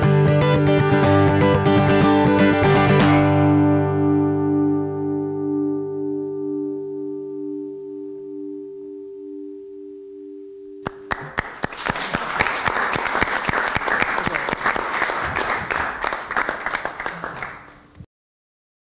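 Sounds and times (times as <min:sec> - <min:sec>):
guitar chord ringing: 0:00.0 - 0:11.1
audience applause: 0:10.9 - 0:18.0.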